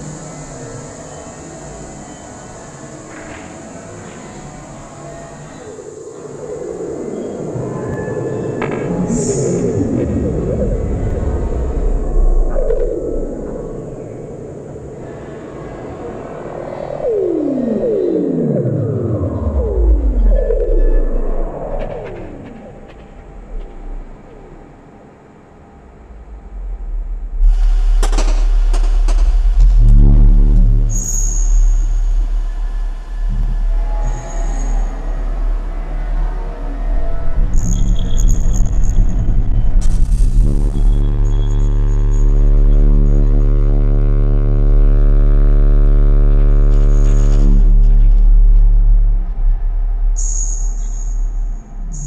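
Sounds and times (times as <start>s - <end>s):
deep bass drone: 0.0s - 52.0s
deep low rumble: 6.7s - 14.6s, 17.7s - 24.8s, 25.9s - 52.0s
glitch electronic music: 27.3s - 35.6s, 37.4s - 49.2s.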